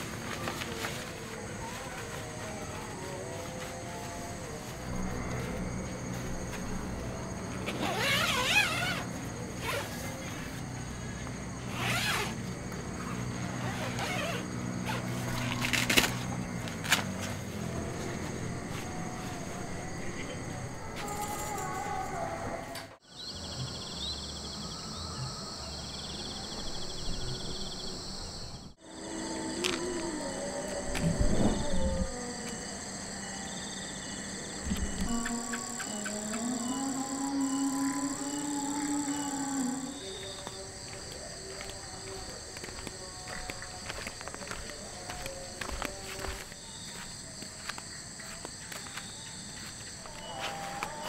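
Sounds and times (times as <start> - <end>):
insects chirring: 0.0 - 51.0.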